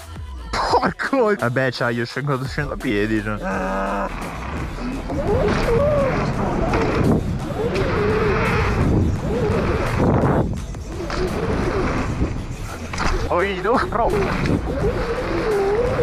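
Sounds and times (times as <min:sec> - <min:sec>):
bike tyres rolling on dirt: 0:02.8 - 0:16.0
wind buffeting microphone: 0:04.4 - 0:12.9, 0:13.6 - 0:16.0.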